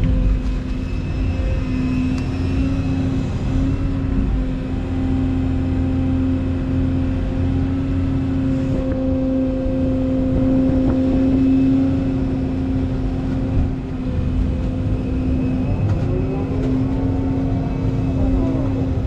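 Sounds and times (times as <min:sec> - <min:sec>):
diesel engine drone: 0:00.0 - 0:19.0.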